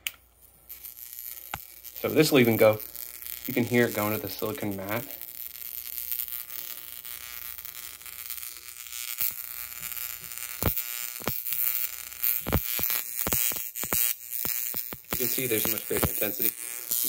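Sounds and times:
high-pitched electrical buzz: 0.0s - 17.0s
sparks snapping: 0.0s - 17.0s.

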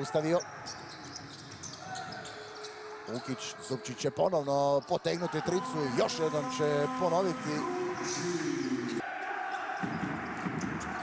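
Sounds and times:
indoor arena background noise: 0.0s - 11.0s.

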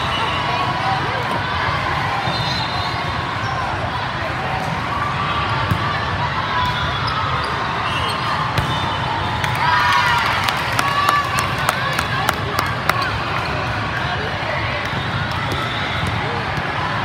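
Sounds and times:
players shouting and cheering: 0.0s - 17.0s.

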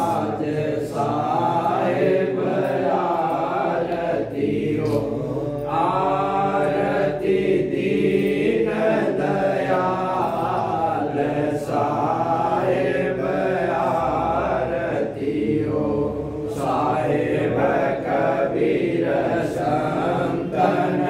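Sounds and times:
voices chanting a hymn: 0.0s - 21.0s.

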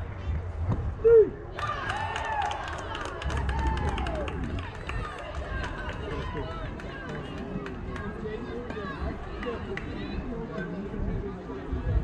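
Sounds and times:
people calling out and chattering: 0.0s - 12.0s.

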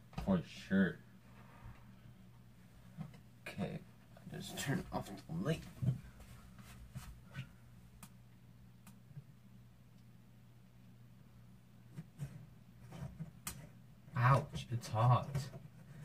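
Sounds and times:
faint clicks and taps: 11.9s - 13.8s.

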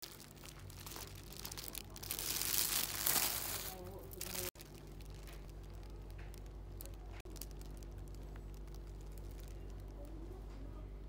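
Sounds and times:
plastic wrapping crinkling: 0.0s - 10.7s
low shop hum: 0.0s - 11.0s.

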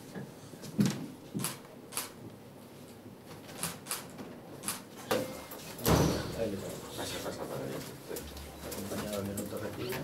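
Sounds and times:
camera shutter clicks: 1.4s - 2.1s, 3.6s - 4.8s.

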